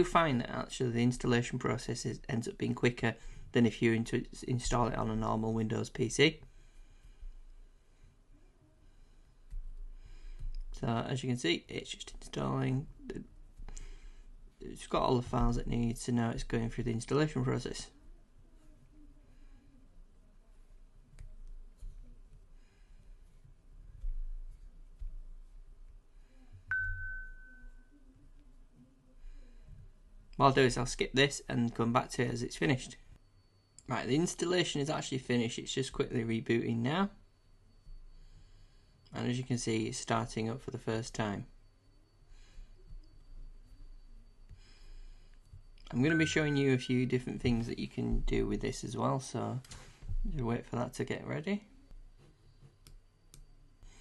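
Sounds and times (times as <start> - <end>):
bell-like ding: 26.7 - 27.9, 46.0 - 47.3.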